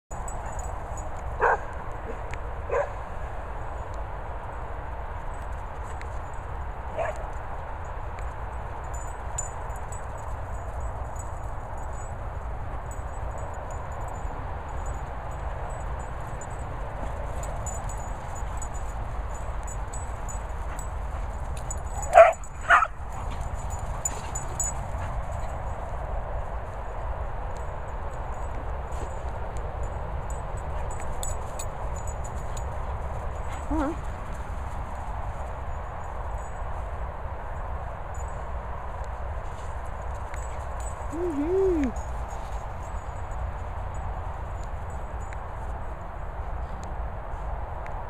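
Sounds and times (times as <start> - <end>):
dog barking: 1.4 - 3.0, 7.0 - 7.2, 22.0 - 23.0
dog play barks: 1.4 - 3.0, 6.9 - 7.3, 20.7 - 25.5, 33.5 - 34.2.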